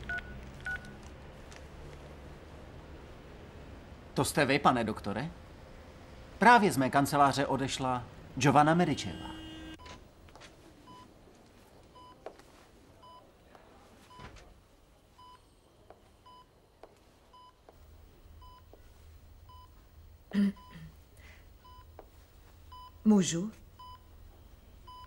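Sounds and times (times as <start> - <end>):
patient monitor beeping: 0.0 - 1.0, 8.9 - 10.0, 11.9 - 12.2, 15.2 - 16.6, 17.3 - 23.0, 23.7 - 25.0.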